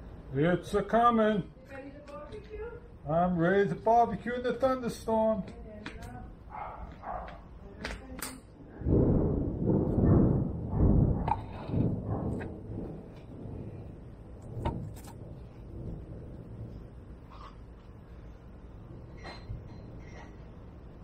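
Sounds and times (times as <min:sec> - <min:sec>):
thunder rumbling: 0:08.5 - 0:21.0.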